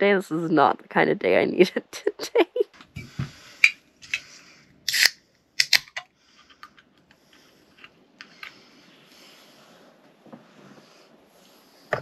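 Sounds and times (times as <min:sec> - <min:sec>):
soda can tab cracking open: 0:04.9 - 0:06.0.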